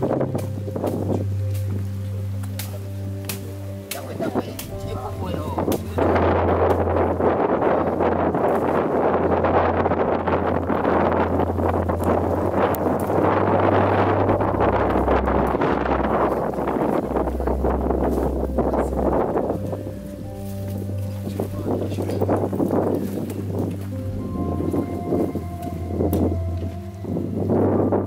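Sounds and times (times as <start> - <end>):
low bass music notes: 0.0 - 28.0
wind buffeting microphone: 0.0 - 28.0.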